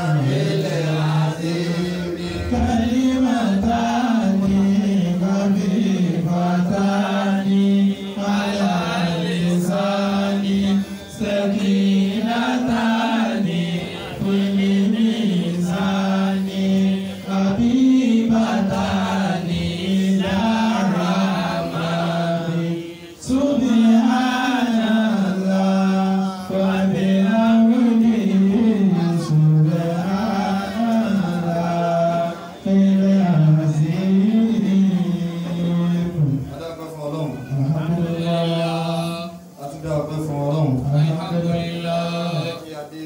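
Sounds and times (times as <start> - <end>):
man chanting: 0.0 - 43.0.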